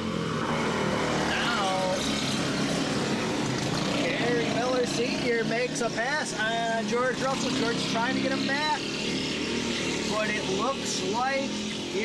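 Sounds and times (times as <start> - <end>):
go-kart engines racing past: 0.0 - 12.0.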